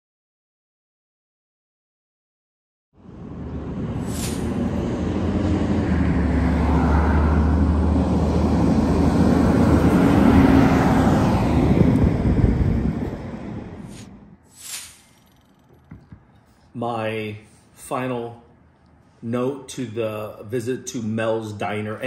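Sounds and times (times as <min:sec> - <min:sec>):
vehicle passing on street: 0:03.0 - 0:16.8.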